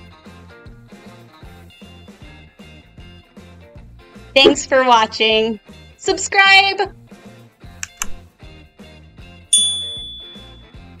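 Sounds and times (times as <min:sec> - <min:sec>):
mouse clicks: 0:07.8 - 0:08.2
bell-like ding: 0:09.6 - 0:10.8.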